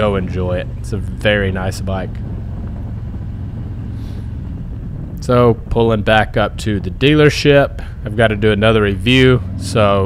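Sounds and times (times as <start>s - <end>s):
motorcycle engine droning: 0.0s - 10.0s.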